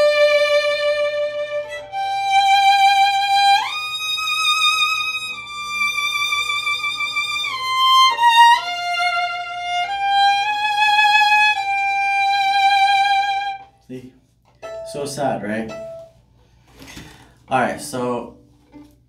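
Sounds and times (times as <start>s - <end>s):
solo violin slow phrase: 0.0s - 13.7s.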